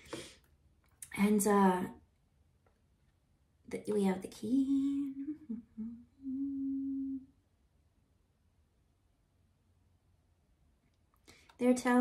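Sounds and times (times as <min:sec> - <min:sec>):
woman humming: 0:04.5 - 0:07.4.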